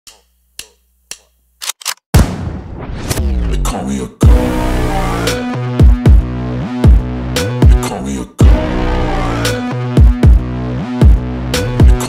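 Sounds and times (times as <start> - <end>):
sharp clicks: 0.1 - 2.1.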